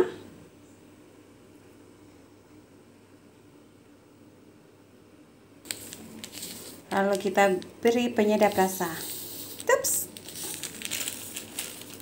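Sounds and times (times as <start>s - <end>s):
faint background noise: 0.0s - 12.0s
plastic sachet crinkling: 5.7s - 12.0s.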